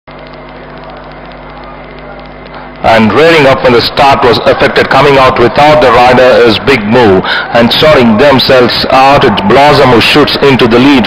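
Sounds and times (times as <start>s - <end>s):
low even hum: 0.1s - 11.0s.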